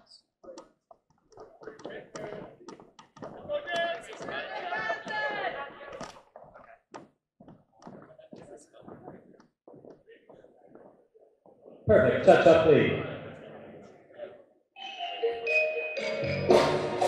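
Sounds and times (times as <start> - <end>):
dance shoe heels tapping on wood: 0.9 - 11.7.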